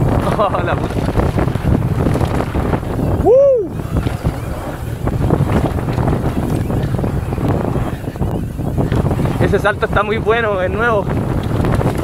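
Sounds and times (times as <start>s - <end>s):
tyre and trail noise: 0.0s - 10.3s
wind rushing on microphone: 0.0s - 12.0s
person whooping: 3.2s - 3.8s.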